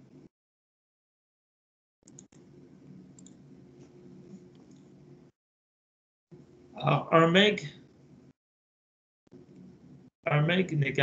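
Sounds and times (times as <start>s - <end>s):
computer mouse clicking: 2.1s - 5.0s.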